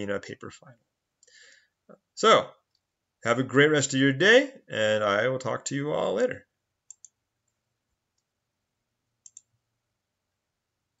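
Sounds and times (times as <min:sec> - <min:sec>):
computer mouse clicks: 0:06.9 - 0:08.3, 0:09.2 - 0:09.5.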